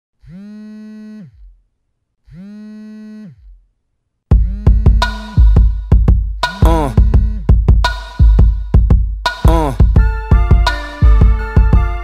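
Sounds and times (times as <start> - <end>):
low electronic tones sliding in pitch: 7.0 - 7.5.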